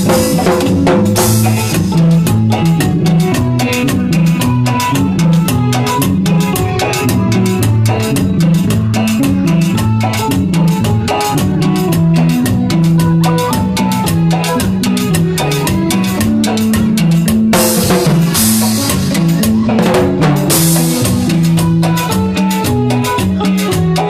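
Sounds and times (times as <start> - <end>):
bass guitar: 0.0 - 24.0
drum kit steady beat: 0.0 - 24.0
electronic keyboard: 0.0 - 24.0.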